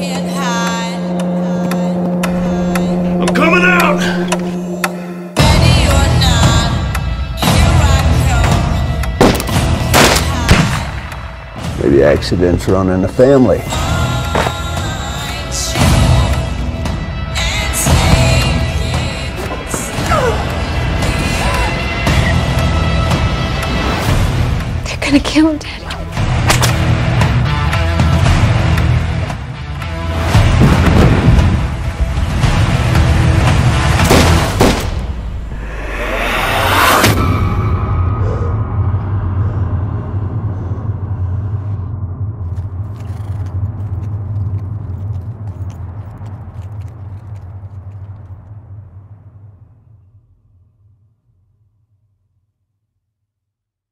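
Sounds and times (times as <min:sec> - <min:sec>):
dramatic trailer music: 0:00.0 - 0:50.6
man's voice: 0:03.1 - 0:04.5, 0:11.8 - 0:14.0
gunshots: 0:09.2 - 0:11.0, 0:34.0 - 0:35.1.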